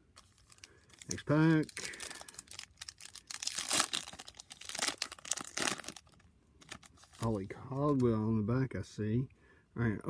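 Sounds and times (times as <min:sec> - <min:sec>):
foil wrapper tearing and crinkling: 0:00.2 - 0:08.0.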